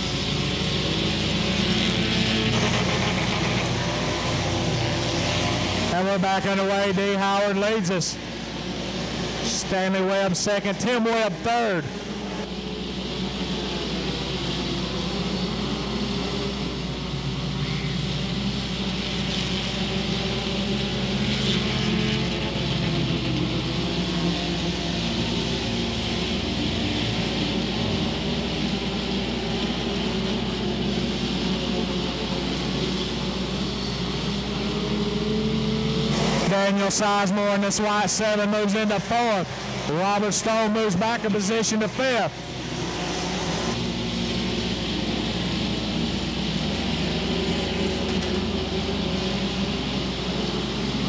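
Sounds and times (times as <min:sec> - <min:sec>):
race car engines droning: 0:00.0 - 0:51.0.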